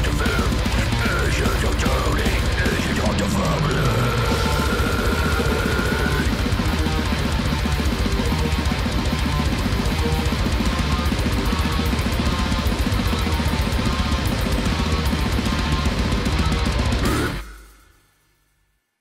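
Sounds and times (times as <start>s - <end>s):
fast drumming with double bass drum: 0.0s - 17.8s
heavy distorted guitars: 0.0s - 18.2s.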